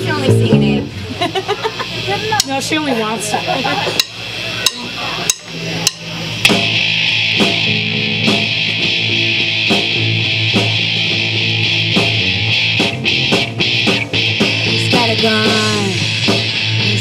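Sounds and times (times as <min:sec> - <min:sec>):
rock band playing: 0:00.0 - 0:17.0
drumstick clicks: 0:04.0 - 0:06.7.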